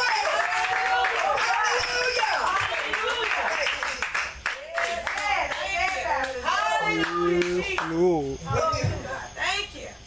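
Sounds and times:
hand clapping: 0.0 - 6.4, 7.0 - 8.0.

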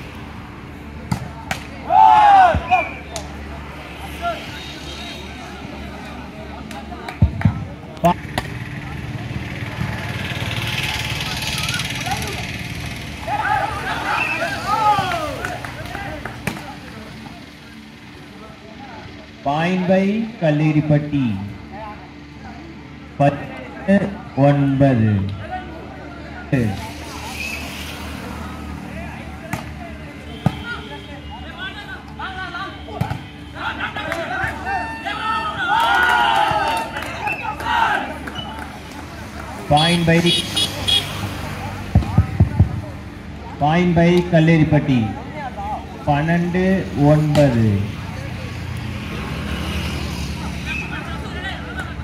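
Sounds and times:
voices of players and spectators: 0.0 - 52.0.

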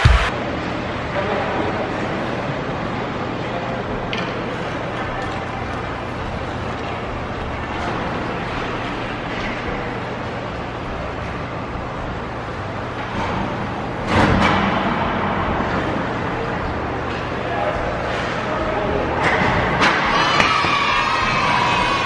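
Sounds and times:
loud bang: 0.0 - 0.3
steady low hum: 0.0 - 19.8.

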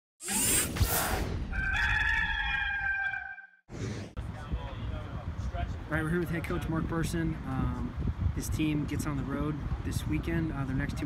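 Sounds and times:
rooster crowing: 1.5 - 3.6.

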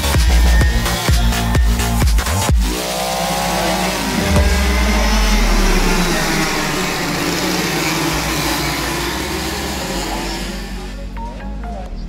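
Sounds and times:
go-kart engines racing past: 0.0 - 11.4.

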